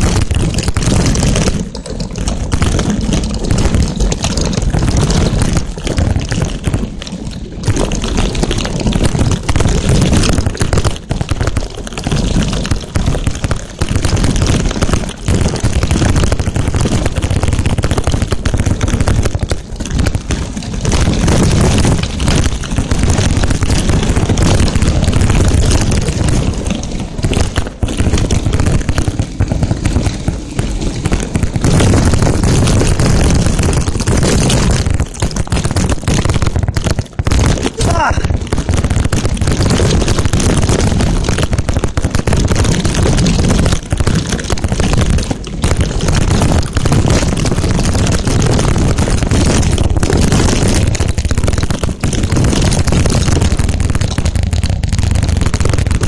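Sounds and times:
bike tyres rumbling on gravel: 0.0s - 56.0s.

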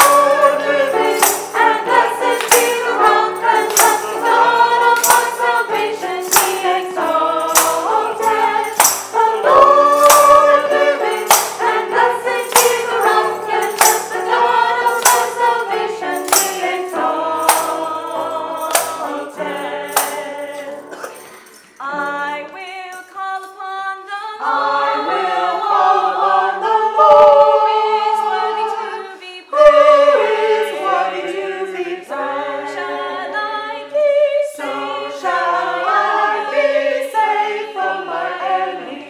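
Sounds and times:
choir singing a hymn: 0.0s - 21.2s, 23.9s - 39.0s
jingling percussion strokes: 0.0s - 23.6s.

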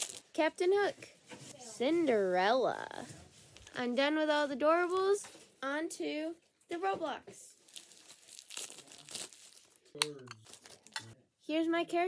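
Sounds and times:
packaging tearing and crinkling: 7.6s - 11.1s.

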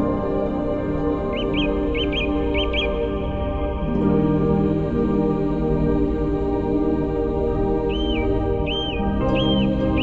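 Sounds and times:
ambient new-age music: 0.0s - 10.0s
bird chirps: 1.2s - 3.1s, 7.9s - 10.0s.

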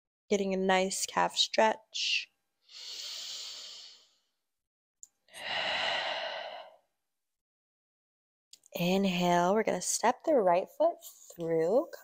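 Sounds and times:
woman breathing deeply: 2.7s - 4.2s, 5.3s - 6.8s.

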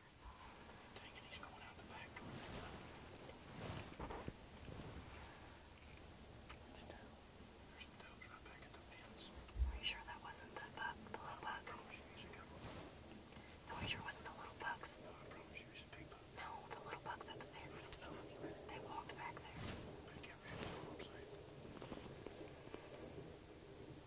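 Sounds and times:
people whispering: 0.0s - 2.9s, 6.7s - 21.4s.

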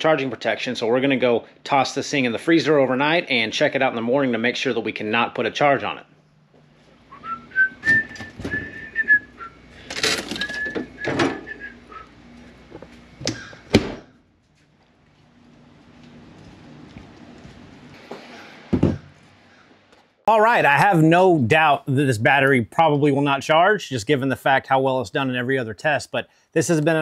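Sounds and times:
man whistling a tune: 7.1s - 9.6s, 10.4s - 12.1s
footsteps: 11.5s - 13.5s, 14.4s - 19.4s
thud: 18.1s - 19.1s
handling knocks and thunks: 18.7s - 19.1s.

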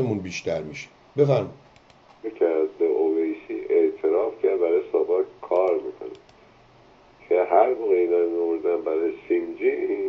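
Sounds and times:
person talking over telephone: 2.2s - 6.2s, 7.2s - 10.0s.

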